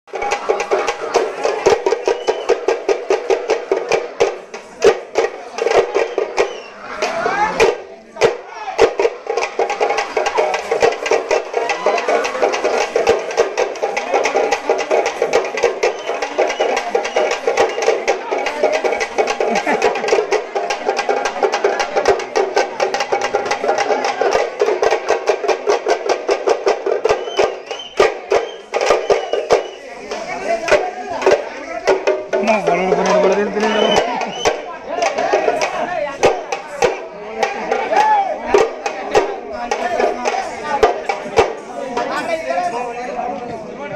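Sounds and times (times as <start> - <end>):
drums beaten in fast rhythm: 0.0 - 43.9.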